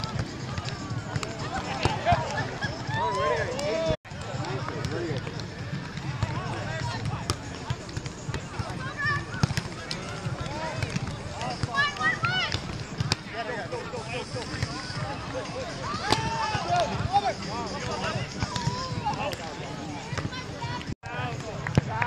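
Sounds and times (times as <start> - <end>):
people talking: 0.0 - 22.0.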